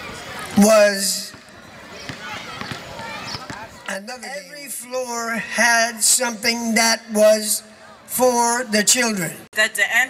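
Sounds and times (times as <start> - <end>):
basketballs bouncing: 1.2 - 3.9.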